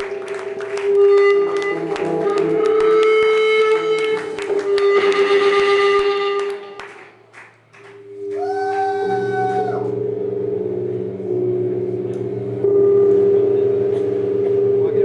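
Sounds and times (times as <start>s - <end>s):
electric guitar feedback drone: 0.0s - 7.0s, 7.7s - 15.0s
low droning amp hum: 0.0s - 15.0s
high feedback whine: 7.7s - 15.0s.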